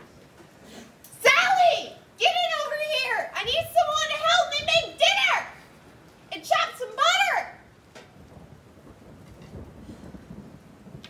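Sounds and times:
woman exclaiming: 1.1 - 5.6, 6.3 - 7.6.

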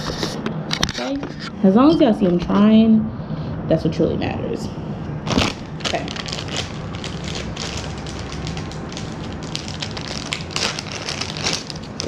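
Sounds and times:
plastic bags crinkling: 5.3 - 12.0.

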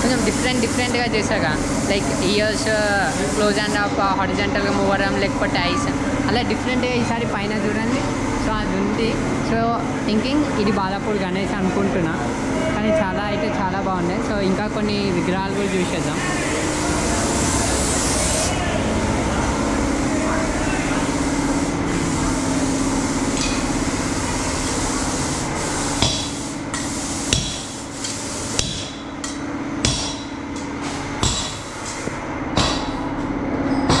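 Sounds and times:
steady workshop hum: 0.0 - 34.0
hammer striking: 26.0 - 31.7.

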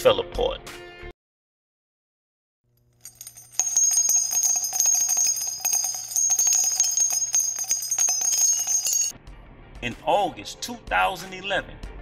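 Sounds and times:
bells jingling and ringing: 3.0 - 9.1.

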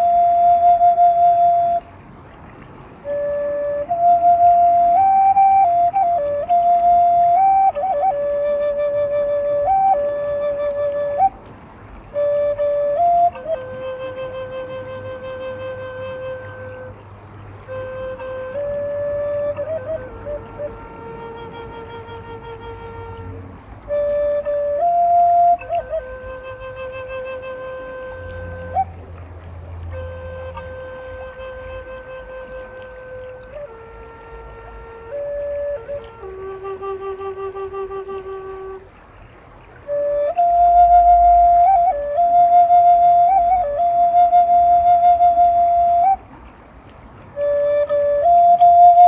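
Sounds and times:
flute playing slow melody: 0.0 - 49.0.

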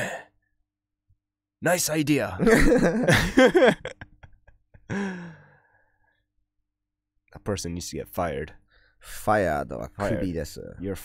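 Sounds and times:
man sighing: 4.9 - 5.8.

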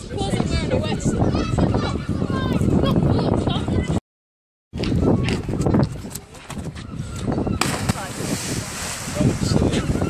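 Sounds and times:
splash into water: 7.6 - 9.7
spray and churned water: 7.9 - 10.0.

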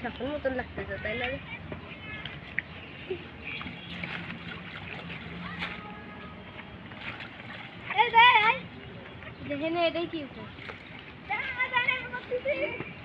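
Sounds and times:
faint distant voices: 0.0 - 13.0
water sloshing and swishing: 0.0 - 13.0.

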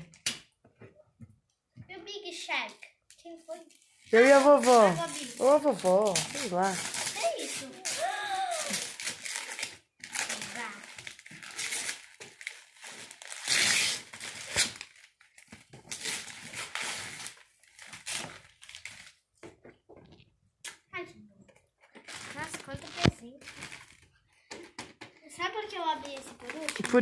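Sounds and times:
wrapping paper tearing and crumpling: 3.1 - 19.2, 21.9 - 24.1, 25.5 - 27.0.

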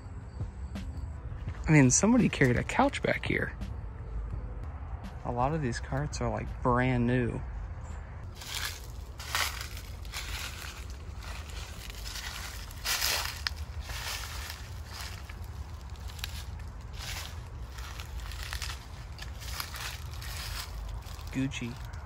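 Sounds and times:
low steady rumble: 7.5 - 22.0
footsteps crunching on dry leaves: 8.2 - 22.0.

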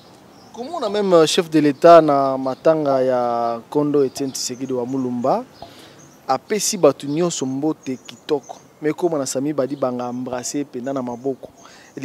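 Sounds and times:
man speaking: 0.6 - 5.5, 6.3 - 12.0.

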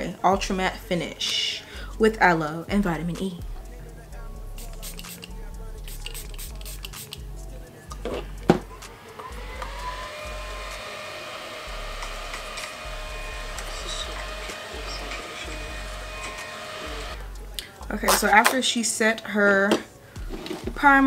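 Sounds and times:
handheld fan motor whine: 8.8 - 17.2.

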